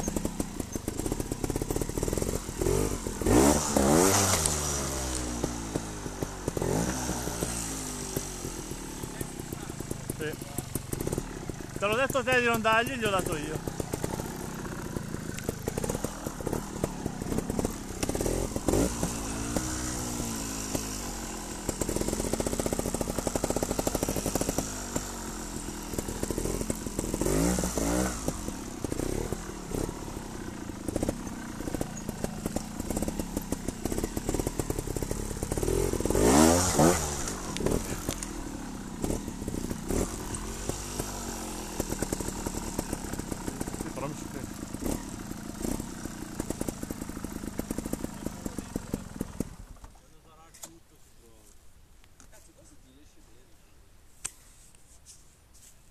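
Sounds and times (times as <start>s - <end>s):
motorcycle engine revving: 0.0s - 50.2s.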